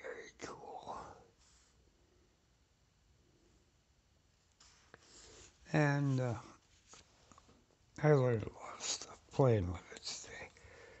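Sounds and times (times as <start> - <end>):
man whispering and exhaling: 0.0 - 1.7, 8.4 - 11.0.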